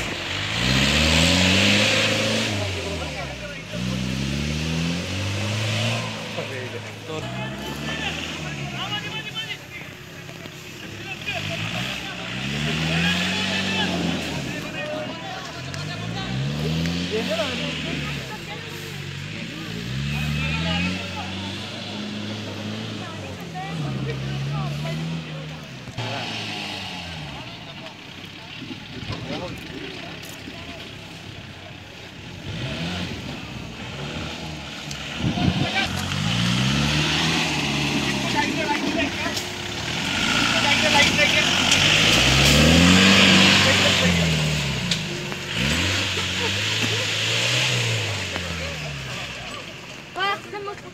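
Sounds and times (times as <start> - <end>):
engine revving hard: 0.0 - 10.0, 10.8 - 30.3, 32.2 - 50.7
voices of onlookers: 0.0 - 50.9.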